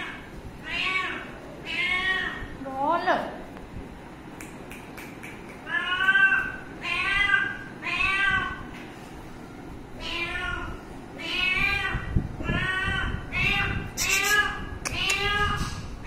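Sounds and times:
cat meowing: 0.0 - 2.5, 5.6 - 8.6, 10.0 - 15.7.

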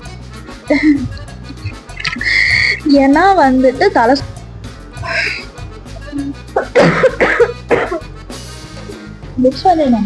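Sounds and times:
soft background music: 0.0 - 10.0
woman coughing: 6.6 - 8.1.

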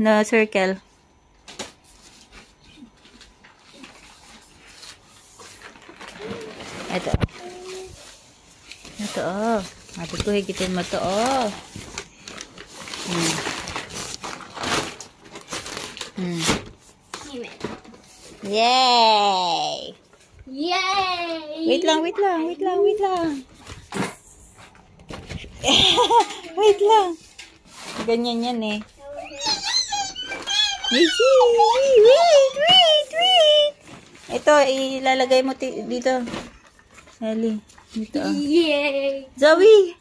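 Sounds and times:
small child whining: 29.0 - 32.2.

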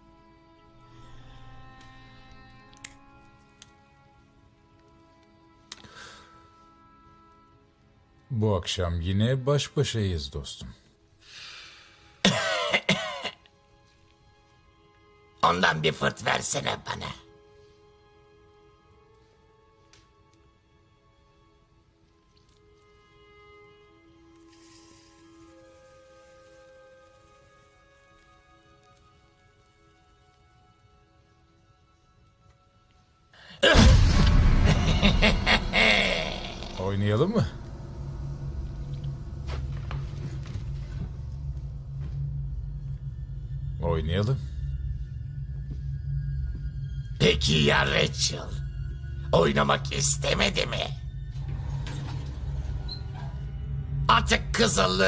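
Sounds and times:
faint sustained music tone: 0.0 - 12.4, 13.6 - 55.0
raspy throat-clearing cough: 12.3 - 13.4
low droning horror score: 33.6 - 55.0.

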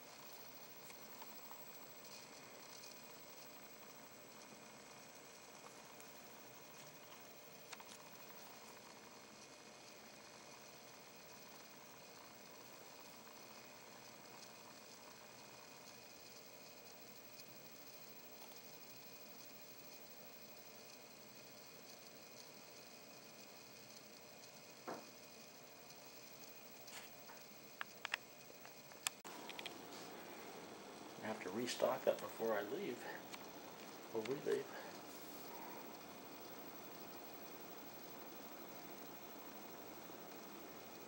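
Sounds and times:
faint hiss: 0.0 - 41.0
sharp clicks: 27.8 - 29.8.

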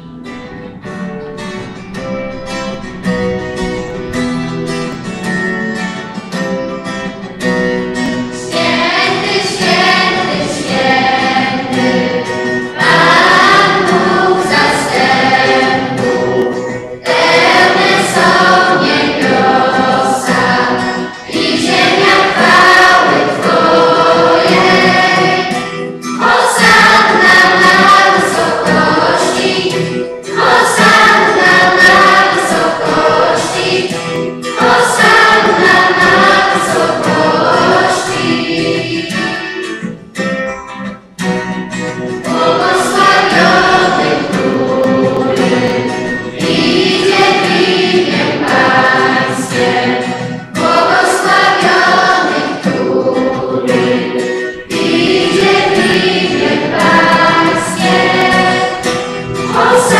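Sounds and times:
choir singing a hymn: 7.9 - 40.0, 42.1 - 59.9.

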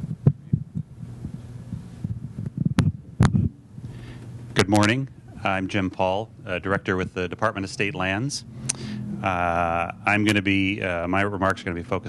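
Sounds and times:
microphone handling thumps: 0.0 - 4.9
low sound system hum: 0.0 - 12.0.

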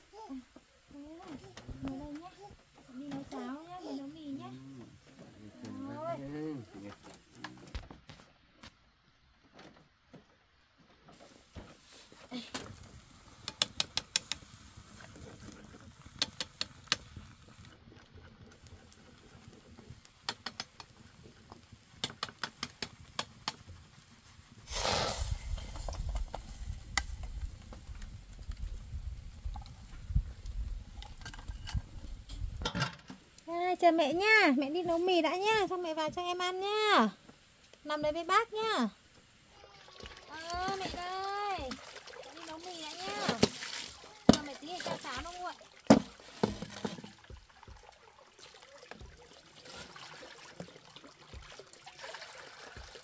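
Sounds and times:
sharp clicks and taps: 13.4 - 14.4, 20.2 - 21.0.

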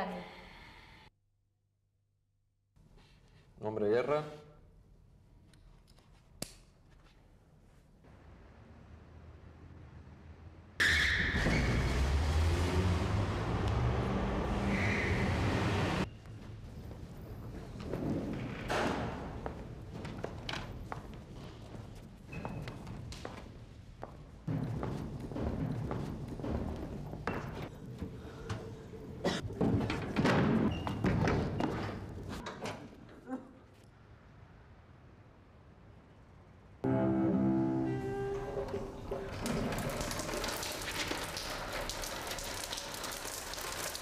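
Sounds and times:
road noise: 8.1 - 17.5
engines rumbling: 11.7 - 16.3
heavy thuds and knocks: 24.5 - 27.7
music: 36.8 - 39.0.

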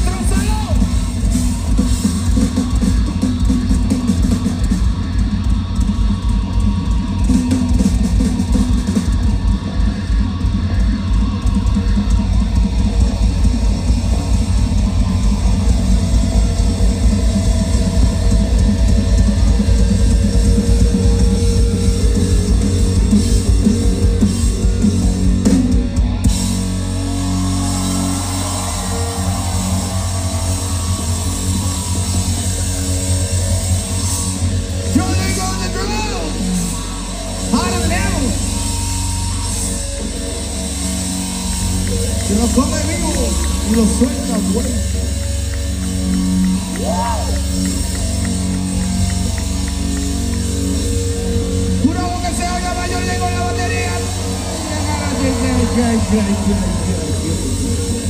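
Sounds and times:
drum kit pounding: 0.0 - 58.0
live rock band playing: 0.0 - 58.0.

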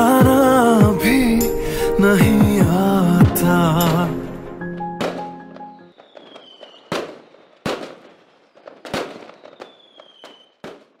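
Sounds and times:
music: 0.0 - 5.9
fireworks crackling: 0.0 - 11.0
fireworks bangs: 1.3 - 11.0
falling firework whistle: 5.0 - 10.9.

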